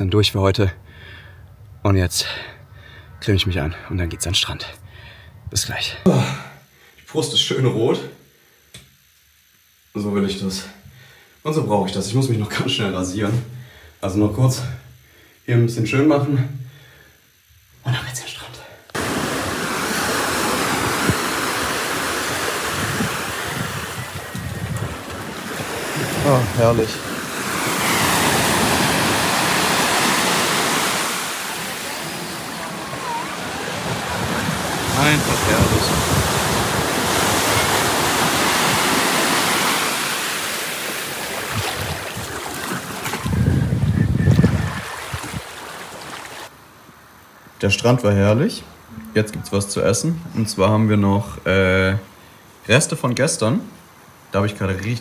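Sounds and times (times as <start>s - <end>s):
surf washing up a beach: 19.0s - 46.5s
wind buffeting microphone: 20.4s - 27.1s, 32.4s - 38.9s, 43.0s - 45.6s.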